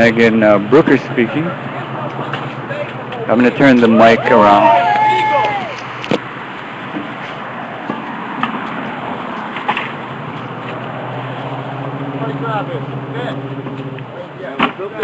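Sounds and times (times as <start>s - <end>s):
low engine hum: 0.0s - 15.0s
road traffic: 0.0s - 15.0s.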